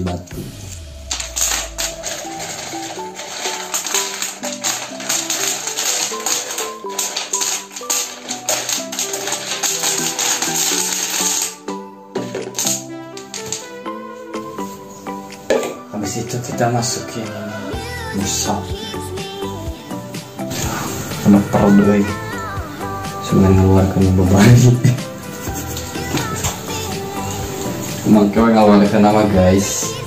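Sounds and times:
background music with melody: 0.0 - 30.0
small stones rattling into pipe: 1.1 - 11.6.

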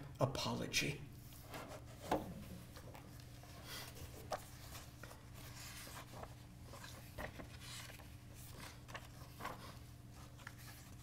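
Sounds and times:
low room hum: 0.0 - 11.0
paper pages rustling: 1.3 - 11.0.

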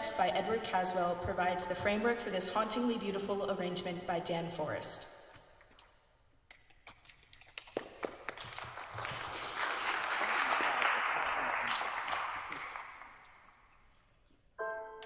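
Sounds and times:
audience applause: 7.8 - 13.2.

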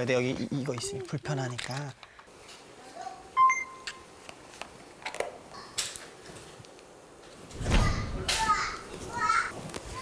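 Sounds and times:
electronic beep: 3.4 - 3.9.

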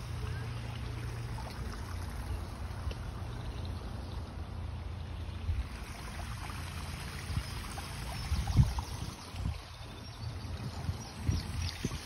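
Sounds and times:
steady outdoor hiss: 0.0 - 12.0
wind buffeting microphone: 7.2 - 12.0.

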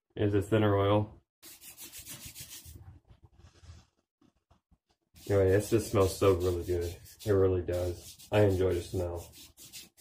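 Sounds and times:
hands rubbing beard: 1.4 - 4.0, 5.2 - 10.0.

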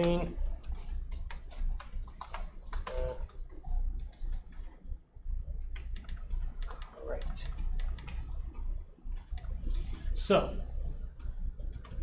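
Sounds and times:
laptop keyboard typing: 0.0 - 10.0, 10.8 - 12.0
steady low hum: 0.0 - 12.0.

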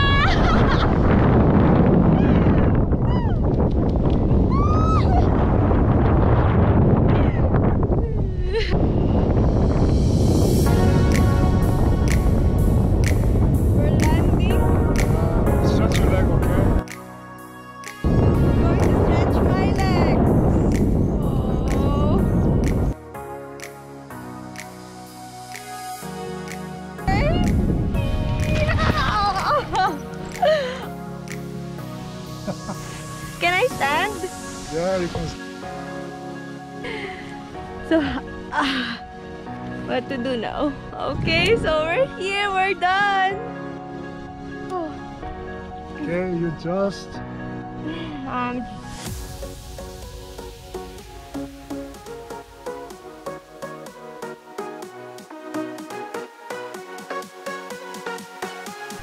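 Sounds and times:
wind buffeting microphone: 0.0 - 16.8, 18.0 - 23.0, 27.0 - 30.8, 39.9 - 42.6
background music: 8.5 - 59.0.

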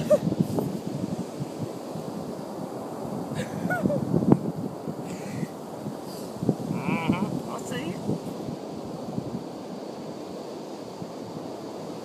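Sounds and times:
wind rumbling on microphone: 0.0 - 12.0.

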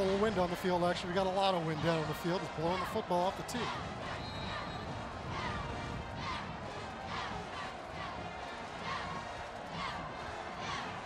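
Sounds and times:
band playing in stadium: 0.0 - 11.0
crowd noise: 0.0 - 11.0.

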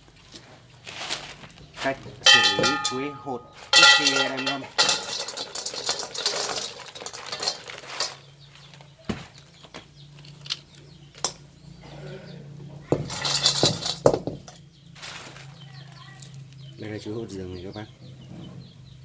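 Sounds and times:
dried fruit rattling in metal wok: 0.9 - 9.0, 10.1 - 11.4, 12.9 - 16.6
pieces clicking as they settle: 3.6 - 8.8, 10.0 - 11.4.

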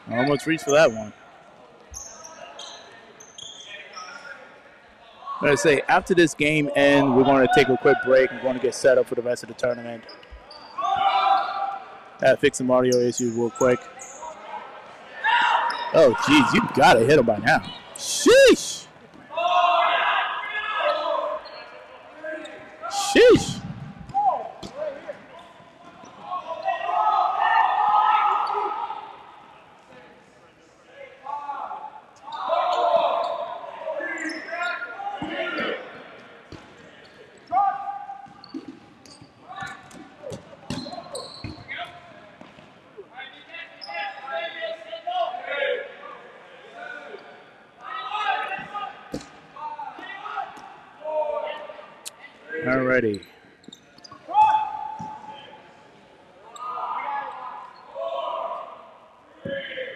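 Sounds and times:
players calling out: 5.4 - 11.6, 15.2 - 29.3
balls bouncing off gym floor: 39.6 - 41.6.

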